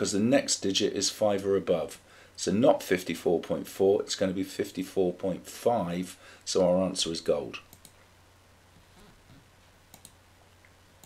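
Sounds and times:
faint low hum: 0:00.0 - 0:11.0
computer mouse click: 0:07.7 - 0:08.0, 0:09.9 - 0:10.2.

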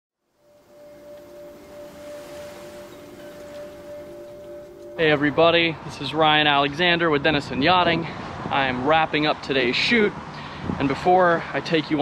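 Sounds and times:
soft low tones: 0:00.2 - 0:07.2
held ringing tone: 0:00.3 - 0:06.6.

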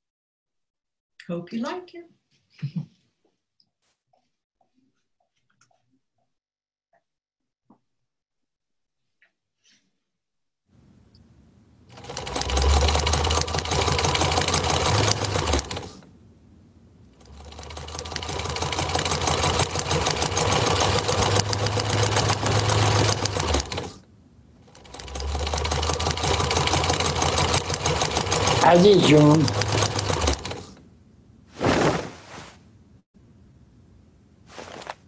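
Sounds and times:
sewing machine stitching: 0:11.9 - 0:16.0, 0:17.2 - 0:24.0, 0:24.6 - 0:30.8.

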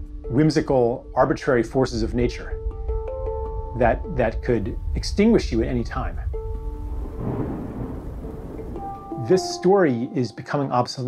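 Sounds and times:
deep low rumble: 0:02.6 - 0:09.0
heavy wind-driven rain: 0:02.9 - 0:09.4.

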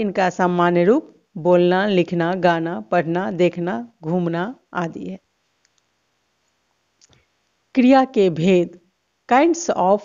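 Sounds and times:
person speaking: 0:00.0 - 0:05.2.

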